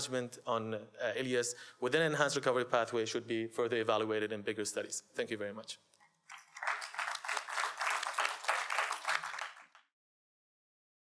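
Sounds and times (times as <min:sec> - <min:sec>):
audience applause: 0:06.3 - 0:09.9.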